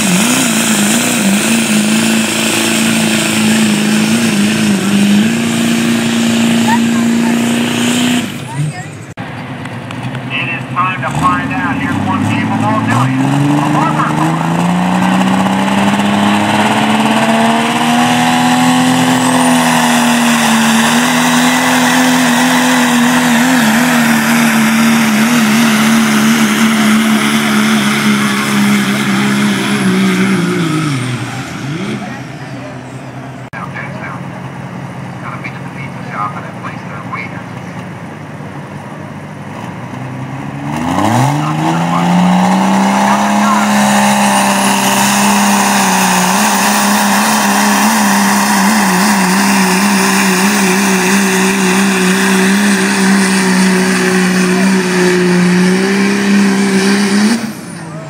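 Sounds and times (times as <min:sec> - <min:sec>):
diesel pickup engine revving high: 0:00.0 - 0:58.0.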